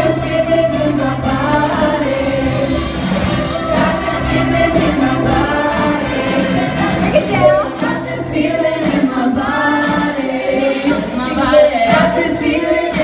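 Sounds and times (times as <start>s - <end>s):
choir singing a pop song: 0.0s - 13.0s
live band playing: 0.0s - 13.0s.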